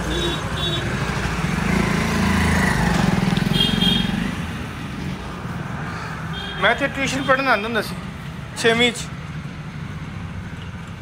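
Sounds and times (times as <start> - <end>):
faint street hum: 0.0 - 11.0.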